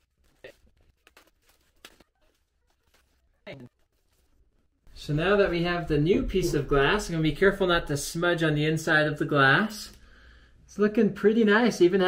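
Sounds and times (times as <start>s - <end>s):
plastic wrap rustling: 0.0s - 4.8s.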